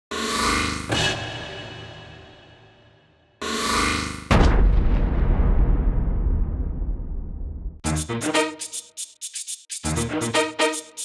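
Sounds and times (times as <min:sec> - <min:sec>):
deep boom: 0:04.3 - 0:07.8.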